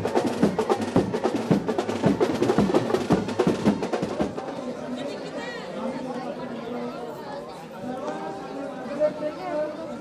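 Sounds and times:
drum beats: 0.0 - 4.8
crowd chatter: 0.0 - 10.0.

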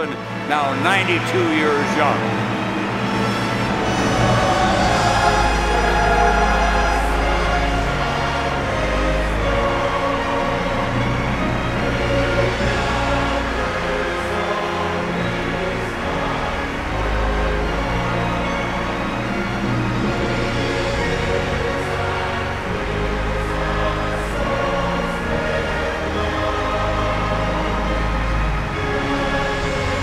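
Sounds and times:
choir singing: 0.0 - 30.0
orchestra playing: 0.0 - 30.0.

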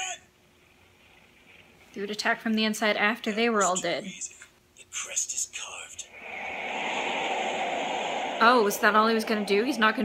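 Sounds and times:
steady rushing noise: 6.1 - 10.0.

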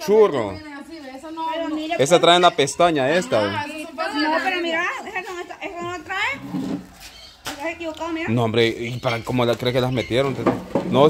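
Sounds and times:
people talking: 0.0 - 6.5, 7.5 - 11.0.

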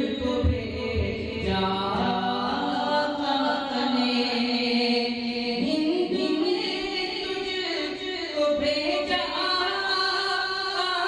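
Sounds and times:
man singing over loudspeakers: 0.0 - 11.0.

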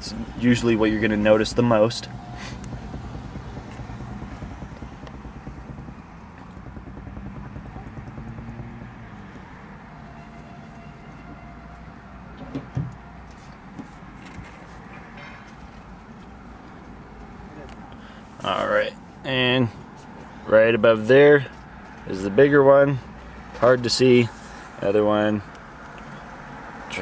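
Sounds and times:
road traffic rumble: 0.0 - 27.0.

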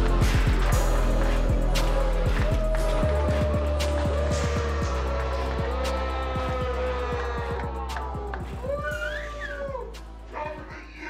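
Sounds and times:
background music with drum beat: 0.0 - 10.7.

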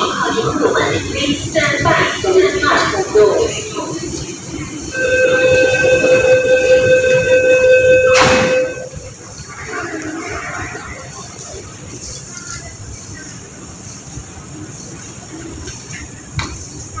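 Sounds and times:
station noise: 0.0 - 17.0
door warning tone: 5.0 - 9.0
train doors shutting with a knock: 5.2 - 9.1.

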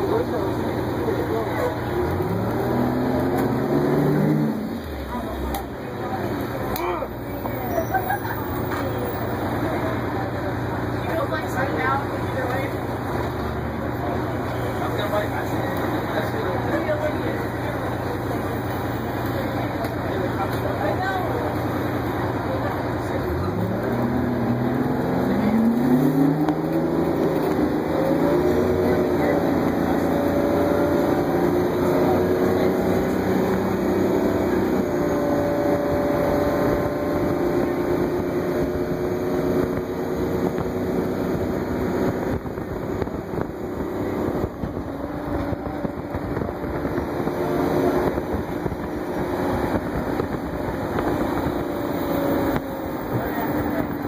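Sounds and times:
bus engine running: 0.0 - 54.0
faint voices: 0.0 - 54.0
road and wind noise: 0.0 - 54.0
bus engine idling: 4.6 - 24.3.

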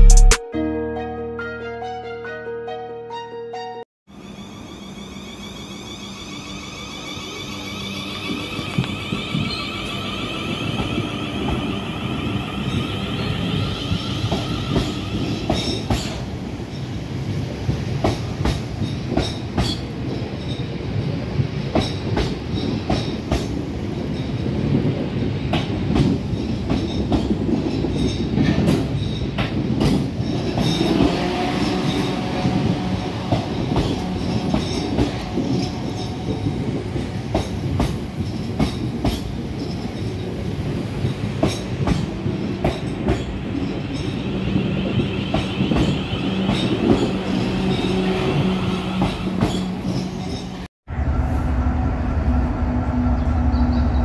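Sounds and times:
train wheels rumbling on rails: 7.2 - 54.0.

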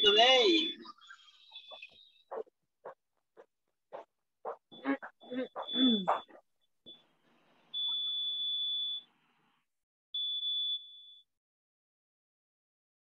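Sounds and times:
high-pitched electronic beep: 0.0 - 2.0, 4.7 - 6.3, 7.8 - 9.0.

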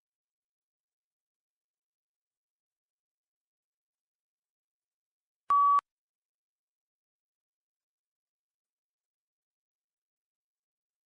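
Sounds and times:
short electronic beep: 5.5 - 5.8.

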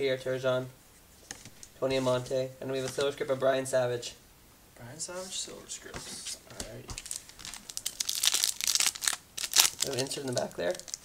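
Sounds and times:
foil wrapper tearing and crinkling: 6.9 - 11.0.

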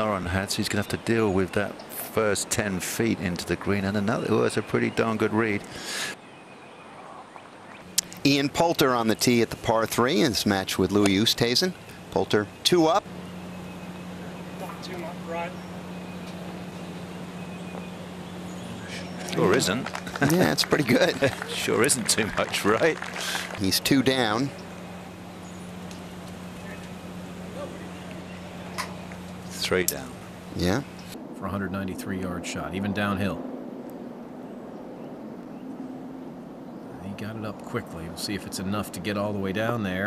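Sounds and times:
steady low hum: 0.0 - 6.2, 7.8 - 40.0
faint bird calls: 3.4 - 31.2.

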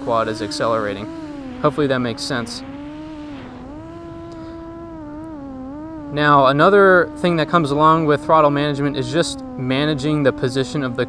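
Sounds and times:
quadcopter motors whining: 0.0 - 11.0.

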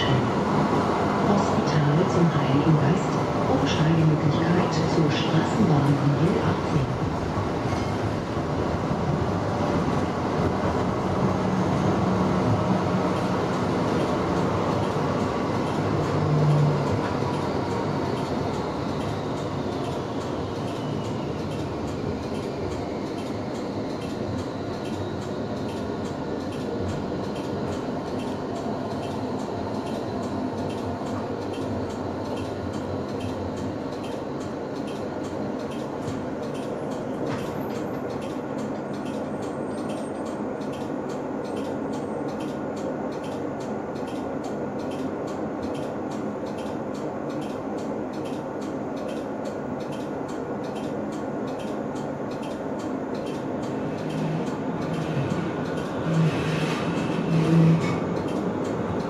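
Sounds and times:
tram wheels rolling on rail: 0.0 - 59.0.

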